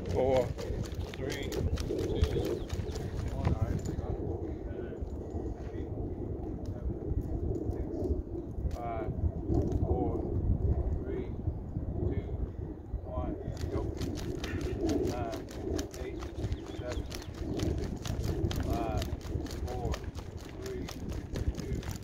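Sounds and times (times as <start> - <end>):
bird calling: 0.0 - 3.7, 14.4 - 18.6
wind rumbling on microphone: 0.0 - 22.0.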